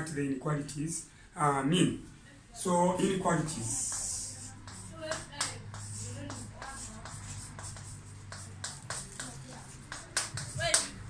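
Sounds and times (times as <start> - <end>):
chalk scratching on chalkboard: 3.4 - 11.0
chalk squeak: 3.7 - 10.8.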